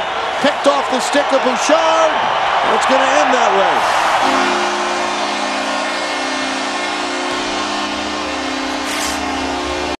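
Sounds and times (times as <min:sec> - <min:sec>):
arena crowd noise: 0:00.0 - 0:10.0
arena horn chord: 0:04.1 - 0:10.0.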